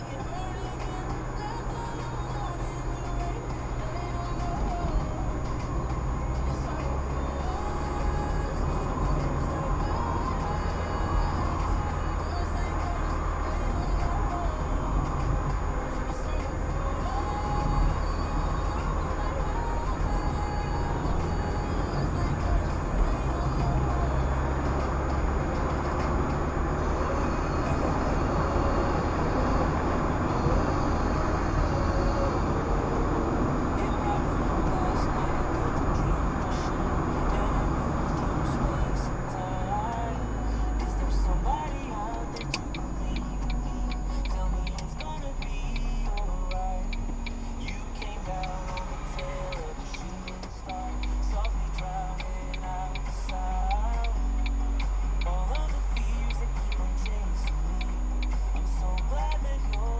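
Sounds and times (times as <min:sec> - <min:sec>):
car engine and road noise: 0:00.0 - 0:59.9
music: 0:00.0 - 0:59.9.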